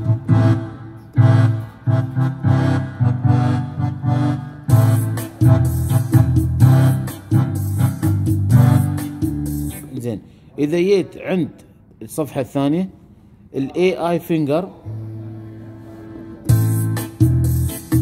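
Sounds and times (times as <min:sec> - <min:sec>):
keyboard chords with low bass: 0:00.0 - 0:10.0, 0:14.8 - 0:18.0.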